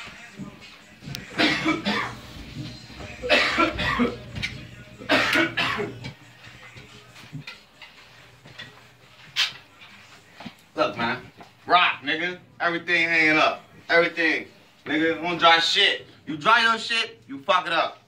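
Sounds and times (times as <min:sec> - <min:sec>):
person coughing: 0:01.3 - 0:02.2, 0:03.2 - 0:04.3, 0:05.0 - 0:06.1.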